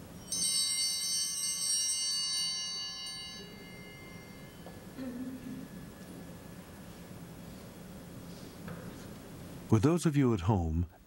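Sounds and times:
altar bell ringing: 0:00.0 - 0:05.0.

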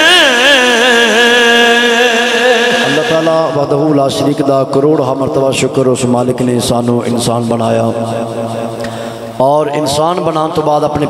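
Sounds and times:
man singing through microphone: 0:00.0 - 0:03.6.

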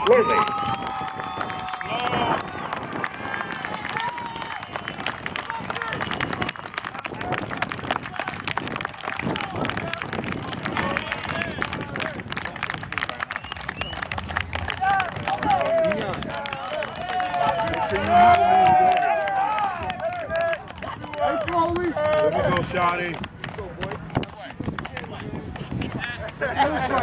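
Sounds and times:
outdoor crowd clapping: 0:00.0 - 0:27.0.

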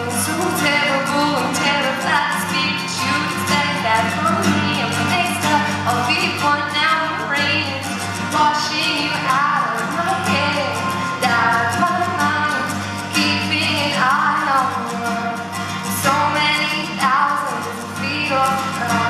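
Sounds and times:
acoustic guitar strumming: 0:00.0 - 0:19.0
woman singing: 0:00.0 - 0:19.0.

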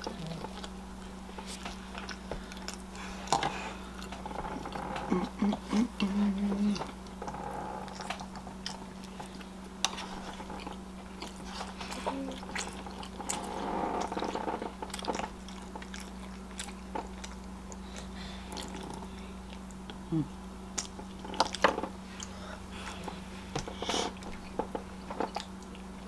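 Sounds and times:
chewing and mouth sounds: 0:00.0 - 0:26.0.

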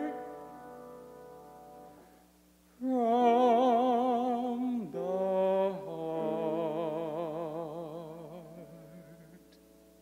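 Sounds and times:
man singing with vibrato: 0:02.8 - 0:09.6.

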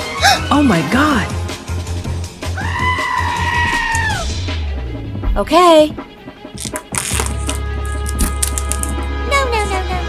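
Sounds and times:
background music with steady beat: 0:00.0 - 0:10.0
high-pitched vocal scream: 0:02.6 - 0:04.2.

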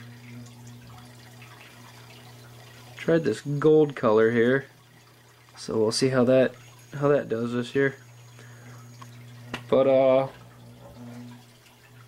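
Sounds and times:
small electric motor humming: 0:00.0 - 0:12.0.

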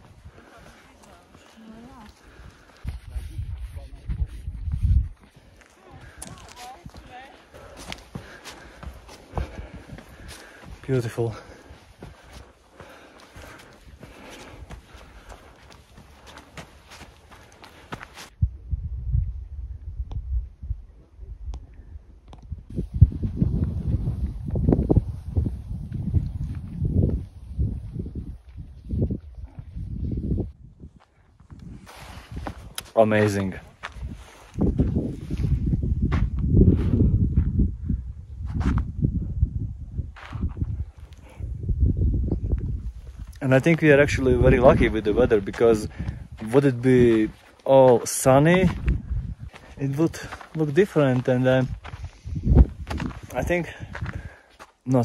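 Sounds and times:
footsteps on trail: 0:00.0 - 0:18.4, 0:22.7 - 0:37.6, 0:40.1 - 0:41.4, 0:42.5 - 0:55.0
wind buffeting microphone: 0:00.0 - 0:54.5.

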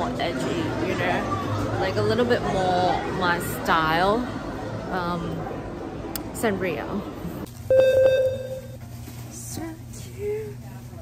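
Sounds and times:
electronic beep: 0:07.7 - 0:08.8.

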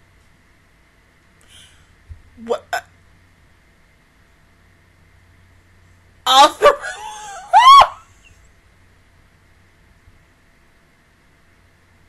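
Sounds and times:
woman laughing: 0:06.4 - 0:08.1.

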